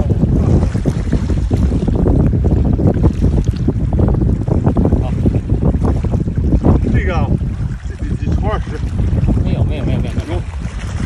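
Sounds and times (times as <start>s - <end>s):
water lapping on rocks: 0.0s - 11.0s
wind buffeting microphone: 0.0s - 11.0s.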